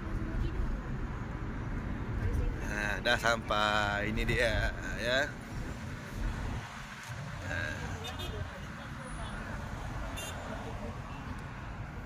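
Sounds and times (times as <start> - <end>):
road noise inside car: 0.0 - 12.0.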